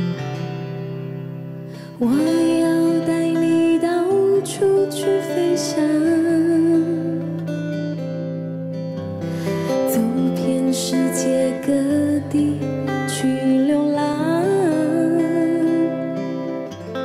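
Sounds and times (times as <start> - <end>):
strummed acoustic guitar: 0.0 - 17.0
woman singing ballad: 1.7 - 7.7, 9.4 - 16.7.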